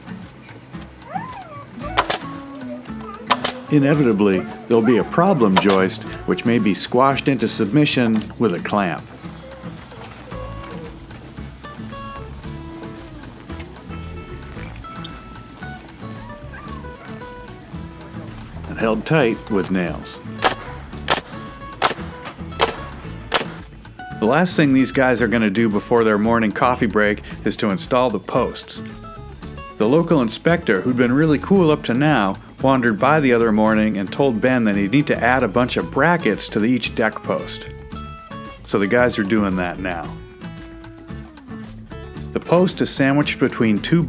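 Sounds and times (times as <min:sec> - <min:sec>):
nail gun firing: 0:02.0 - 0:02.3, 0:03.3 - 0:03.6, 0:20.4 - 0:23.6.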